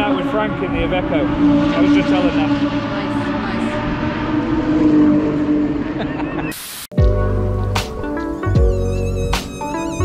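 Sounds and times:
steady engine drone: 0.0s - 6.5s.

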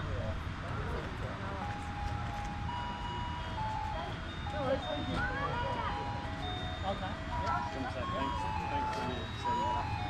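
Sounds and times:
voices talking: 0.6s - 10.0s.

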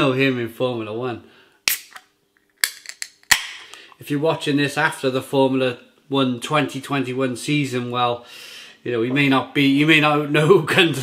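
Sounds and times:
can ring-pull cracking open: 1.7s - 3.8s.

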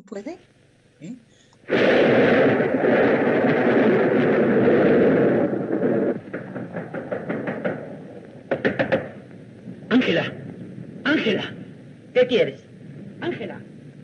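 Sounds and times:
noisy film soundtrack: 1.6s - 14.0s
rapid knocking on a door: 6.4s - 9.2s.

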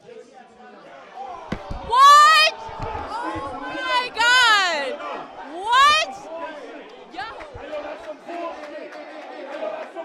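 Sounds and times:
microphone handling thumps: 1.4s - 3.8s, 7.2s - 8.0s
woman shouting in shock: 1.9s - 2.6s, 3.8s - 4.9s, 5.5s - 6.2s.

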